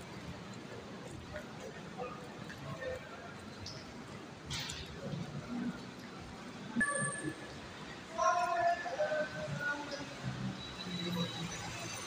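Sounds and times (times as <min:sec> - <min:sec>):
urban background hum: 0:00.0 - 0:12.0.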